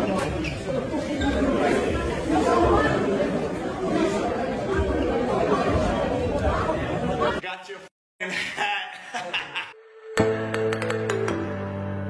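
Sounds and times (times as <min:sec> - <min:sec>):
crowd chatter: 0:00.0 - 0:07.8.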